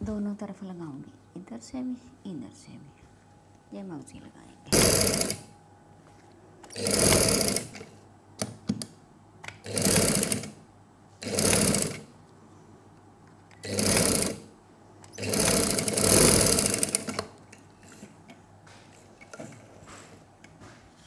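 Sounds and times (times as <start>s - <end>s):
sewing machine stitching: 4.7s - 5.5s, 6.7s - 7.9s, 9.6s - 10.6s, 11.2s - 12.1s, 13.6s - 14.5s, 15.1s - 18.2s.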